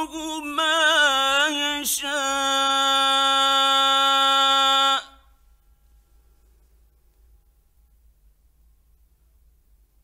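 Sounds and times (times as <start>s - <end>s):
man reciting melodically: 0.0s - 5.4s.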